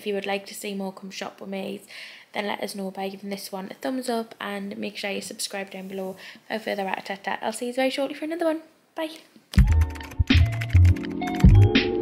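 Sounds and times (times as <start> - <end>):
upbeat electronic music: 9.6 - 12.0.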